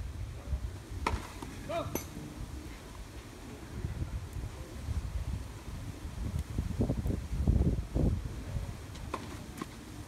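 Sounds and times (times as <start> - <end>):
wind rumble on microphone: 0.0 - 1.1, 2.1 - 10.0
racket hitting tennis ball: 1.0 - 2.2.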